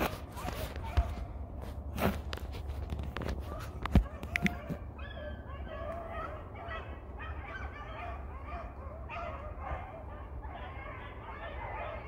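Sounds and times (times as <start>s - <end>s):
hounds baying: 0.0s - 2.2s, 3.2s - 12.0s.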